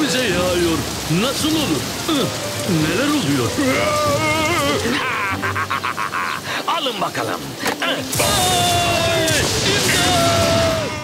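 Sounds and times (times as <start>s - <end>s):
cartoon character laughing: 4.3s - 6.4s.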